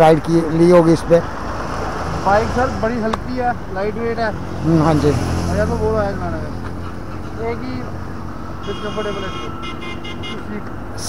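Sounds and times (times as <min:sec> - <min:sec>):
traffic noise: 0:00.0 - 0:11.0
vehicle horn honking: 0:08.6 - 0:10.6.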